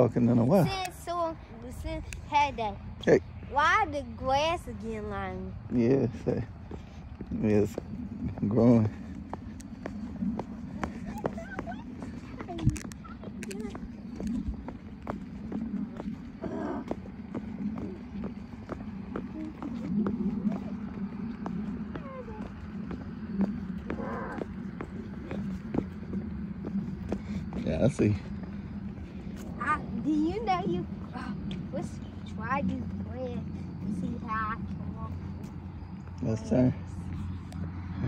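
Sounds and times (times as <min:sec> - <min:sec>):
steady low rumble: 0:00.0 - 0:38.0
footsteps on asphalt: 0:03.4 - 0:38.0.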